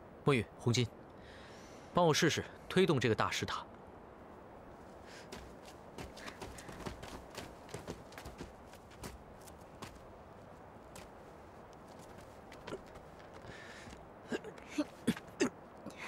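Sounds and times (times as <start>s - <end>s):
footsteps on gravelly dirt: 5.2s - 14.0s.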